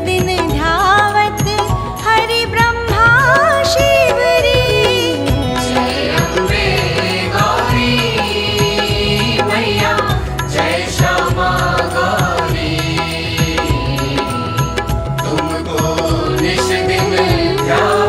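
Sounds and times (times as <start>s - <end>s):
rhythmic accompaniment: 0.0s - 18.0s
chant-like singing: 4.1s - 14.6s, 15.2s - 18.0s.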